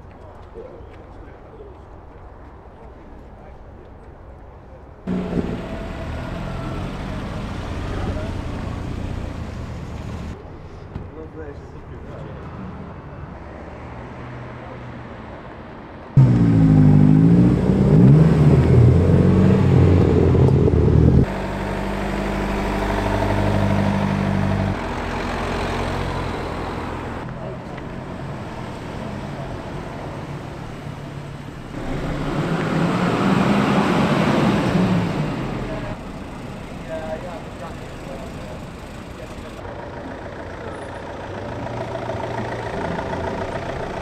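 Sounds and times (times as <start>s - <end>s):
cars driving slowly past: 0.0s - 44.0s.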